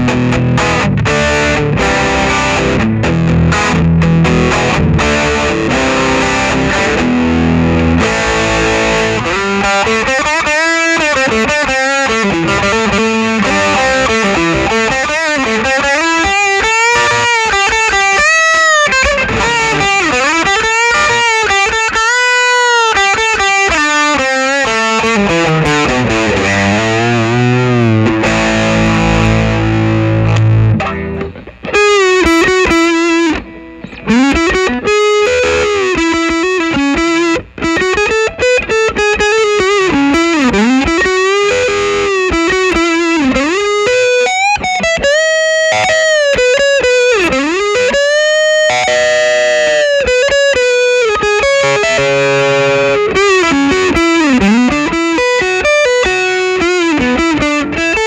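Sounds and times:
overdriven electric guitar: 0.0 - 58.0.

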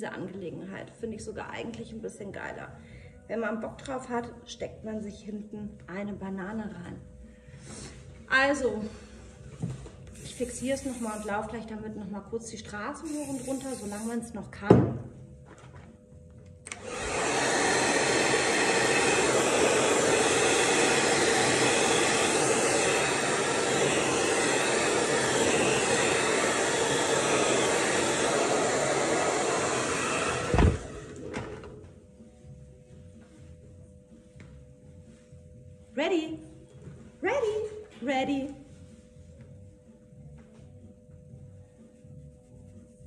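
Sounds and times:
hair dryer blowing: 10.0 - 11.6, 13.0 - 14.3, 16.7 - 32.2
hair dryer switch-off thump: 16.7 - 31.9.

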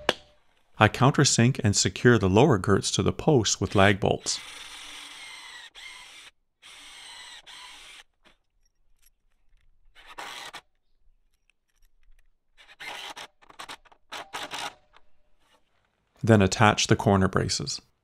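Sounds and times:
cordless drill cutting into wood: 3.6 - 8.4, 9.9 - 10.7, 12.6 - 15.6.

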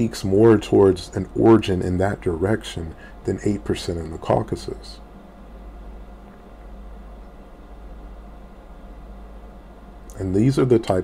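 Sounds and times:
faint background hiss: 0.0 - 11.0
steady low hum: 0.0 - 11.0.

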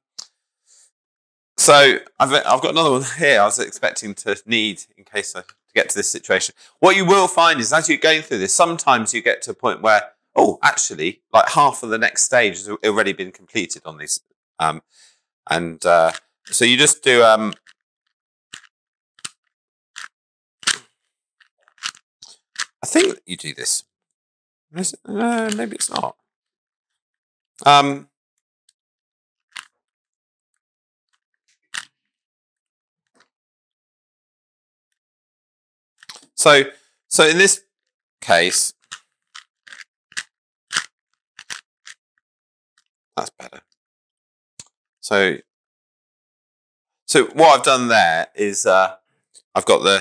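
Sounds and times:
plastic cube layers clicking: 16.0 - 16.2, 18.6 - 19.4, 20.0 - 20.9, 21.7 - 23.2, 38.8 - 42.0.

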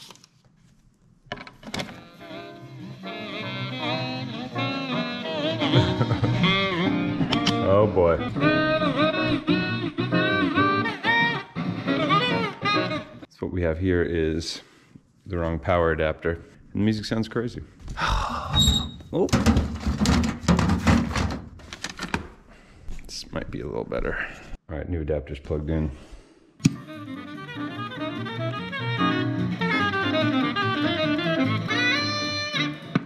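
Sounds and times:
distorted music from record player: 1.8 - 13.1.

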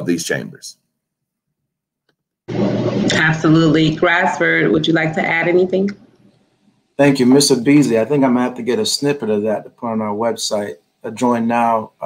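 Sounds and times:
woman speaking: 3.0 - 6.0.

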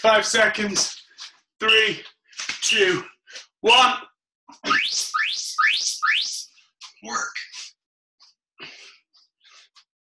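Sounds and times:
rising chirps: 4.6 - 6.5.

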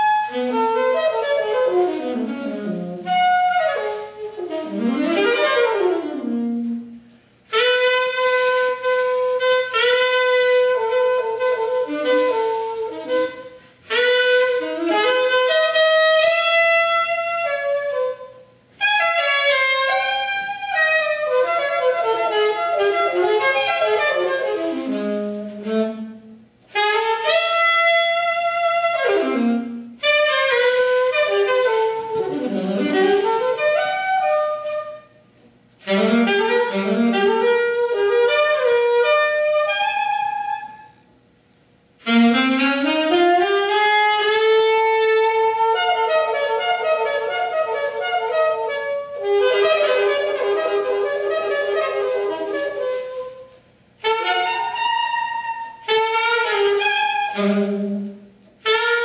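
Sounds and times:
alto saxophone jazz ballad: 0.0 - 59.0.

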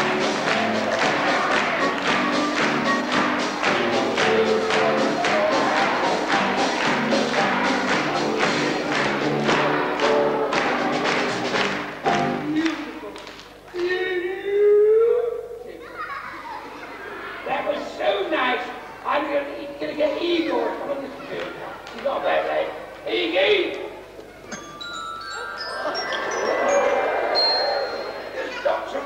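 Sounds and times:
audience voices: 0.0 - 14.4, 15.2 - 29.0
bell-like chime notes: 24.5 - 28.3.

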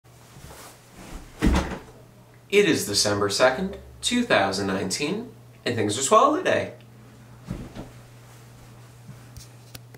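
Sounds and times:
deep thump into chair: 1.2 - 1.9, 7.4 - 8.0
faint shuffling: 7.2 - 9.8.

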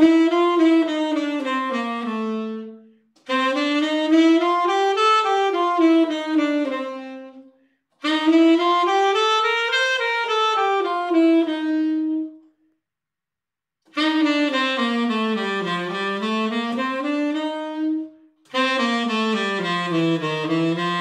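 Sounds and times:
tenor saxophone playing scale runs: 0.0 - 12.4, 13.9 - 21.0.

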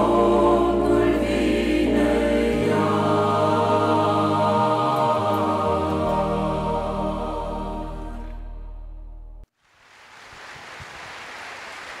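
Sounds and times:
audience applauding: 9.9 - 12.0.

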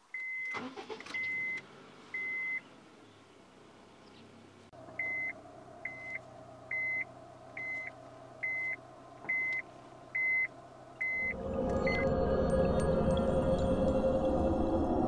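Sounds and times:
low rumbling ambient music: 4.8 - 15.0
short electronic warning beeps: 7.6 - 9.6, 10.2 - 12.0.

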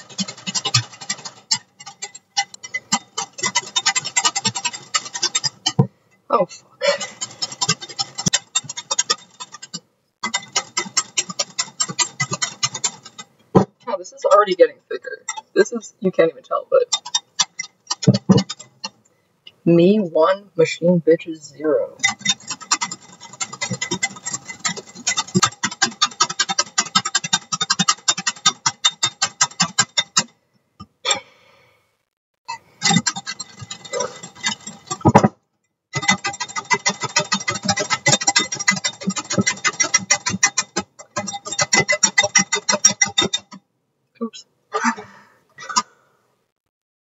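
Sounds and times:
whisk clattering in glass bowl: 0.0 - 5.8, 6.9 - 13.8, 16.8 - 19.0, 22.0 - 30.3, 32.8 - 35.2, 36.0 - 43.6.

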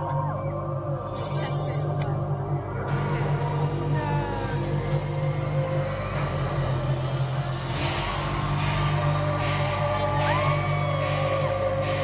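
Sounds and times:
electronic music drone: 0.0 - 12.0
audience cheering and screaming: 9.0 - 12.0.

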